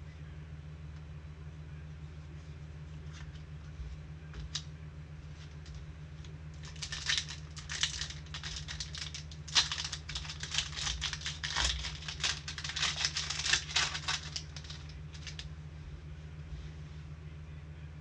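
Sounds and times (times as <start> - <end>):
foil wrapper crinkling and tearing: 6.6 - 15.5.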